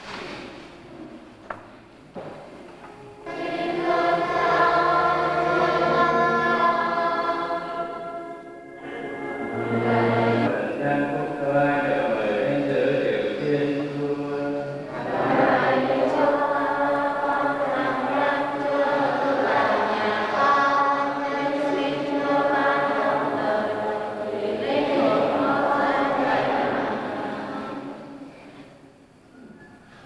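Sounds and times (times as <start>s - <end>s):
choir singing a hymn: 3.0s - 28.7s.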